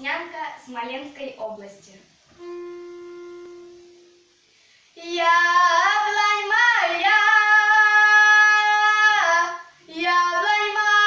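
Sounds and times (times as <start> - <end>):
held musical note: 2.3 - 4.3.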